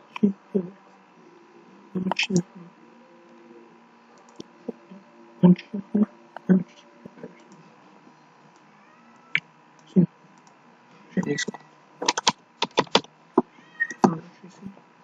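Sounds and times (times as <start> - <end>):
computer keyboard keystrokes: 12.0 - 13.1.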